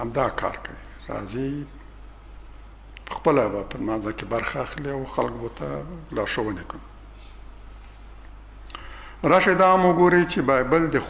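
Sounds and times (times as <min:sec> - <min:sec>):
faint low hum with hiss: 0:00.0 - 0:11.0.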